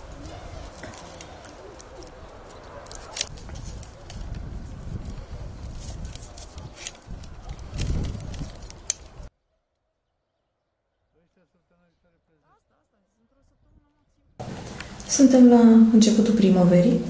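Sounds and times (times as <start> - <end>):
pruning shears snipping branches: 0.2 - 4.4, 5.7 - 9.3.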